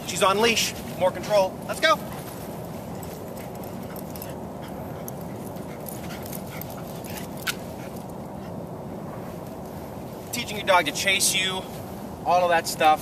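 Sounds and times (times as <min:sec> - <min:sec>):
steady low rush: 0:00.0 - 0:13.0.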